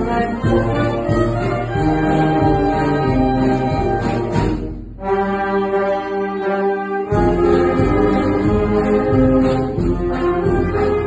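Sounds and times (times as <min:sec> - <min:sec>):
wind band playing a march: 0:00.0 - 0:11.0.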